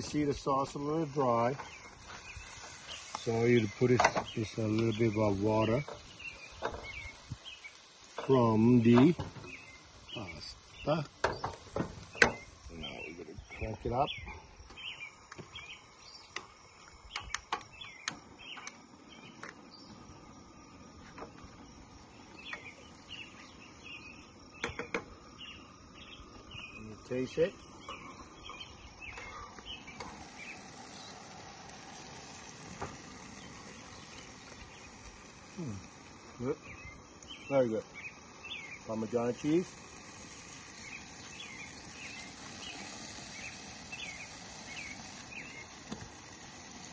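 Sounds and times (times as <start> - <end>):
high outdoor hiss: 0.0 - 46.9
faint bird chirps: 1.2 - 31.4, 33.2 - 45.9.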